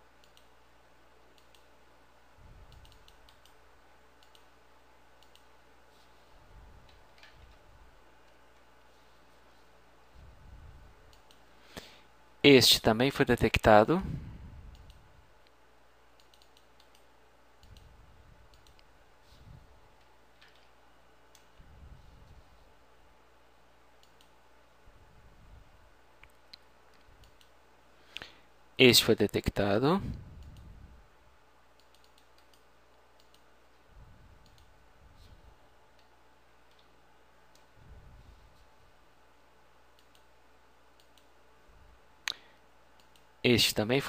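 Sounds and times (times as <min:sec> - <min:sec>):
computer mouse clicks: 0:00.2 - 0:00.5, 0:01.3 - 0:01.7, 0:02.6 - 0:03.6, 0:04.2 - 0:04.5, 0:05.2 - 0:05.5, 0:11.1 - 0:11.4, 0:14.7 - 0:15.0, 0:16.2 - 0:17.9, 0:18.5 - 0:18.9, 0:24.0 - 0:24.4, 0:26.2 - 0:27.6, 0:30.4 - 0:30.7, 0:31.8 - 0:33.5, 0:34.4 - 0:34.7, 0:39.9 - 0:40.3, 0:40.9 - 0:41.3, 0:42.3 - 0:43.3
soft low rumble: 0:08.9 - 0:11.2, 0:21.5 - 0:23.0.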